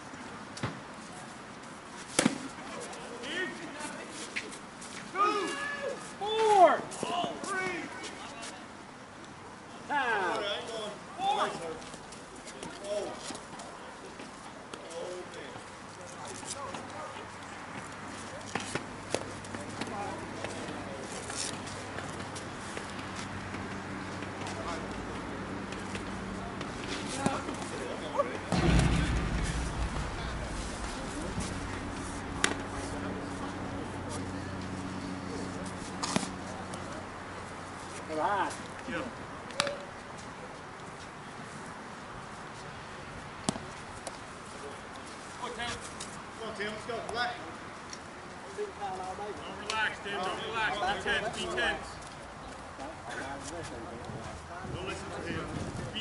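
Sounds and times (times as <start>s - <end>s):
sharp knock: 28.5s - 33.8s
low rumble on microphone: 28.5s - 35.9s.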